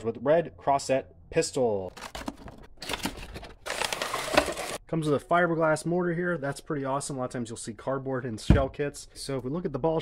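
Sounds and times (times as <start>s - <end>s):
cardboard scraping and rustling: 1.9s - 4.8s.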